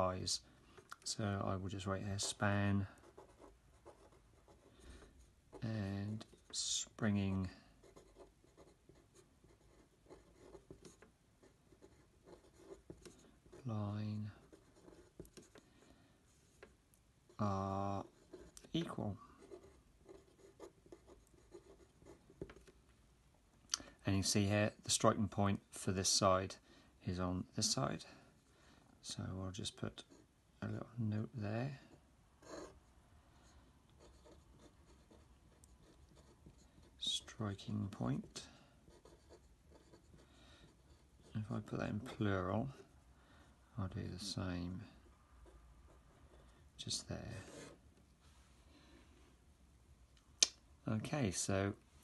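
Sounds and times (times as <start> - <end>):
pen scratching on paper: 3.0 - 6.6, 7.8 - 13.7, 14.4 - 15.6, 18.0 - 22.7, 32.4 - 32.8, 34.0 - 37.1, 38.2 - 42.2, 47.3 - 47.8.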